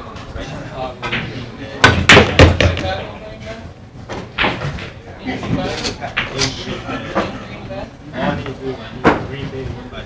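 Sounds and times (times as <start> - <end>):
pool balls clacking: 1.0 - 3.2.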